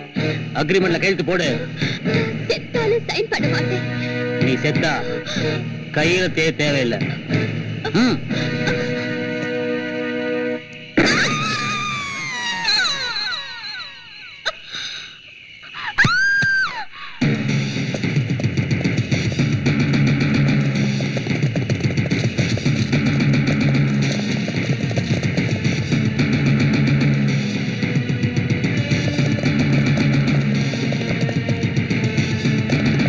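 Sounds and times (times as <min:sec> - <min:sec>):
fast driving beat: 0:17.2 - 0:33.0.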